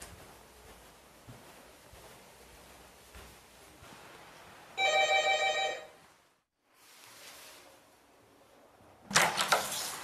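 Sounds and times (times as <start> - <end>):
electric doorbell ringing: 4.8 - 5.9.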